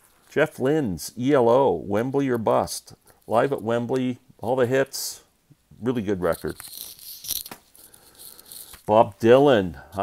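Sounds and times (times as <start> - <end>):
man speaking: 0.3 - 6.6, 8.9 - 10.0
cd packaging rustling and clicking: 6.3 - 8.9.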